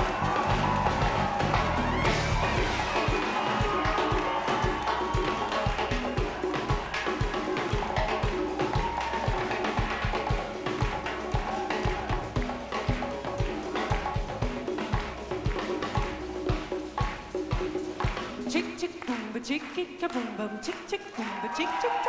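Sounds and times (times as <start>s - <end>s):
horn lines: 0.0s - 19.5s
drum and conga beat: 0.0s - 22.0s.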